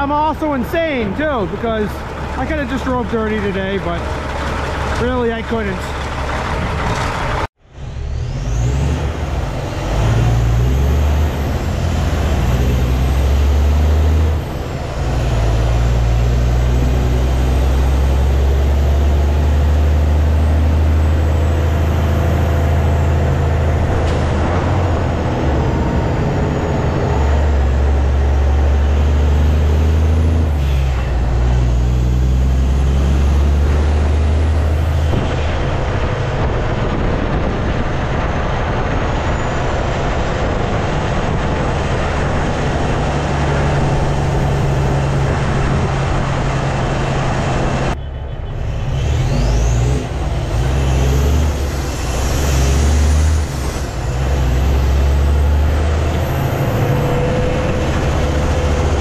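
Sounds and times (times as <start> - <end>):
diesel truck engine changing gears: 0.0 - 59.0.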